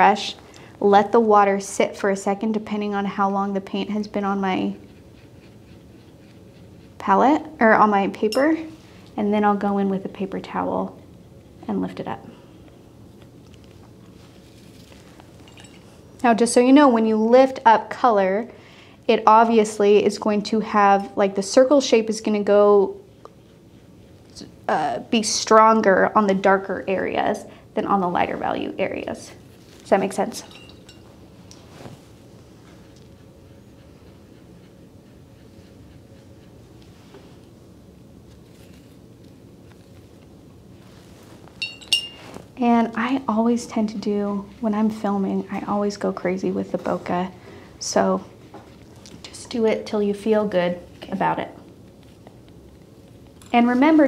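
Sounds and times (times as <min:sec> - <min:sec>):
brushes on paper: 0:31.6 - 0:37.5.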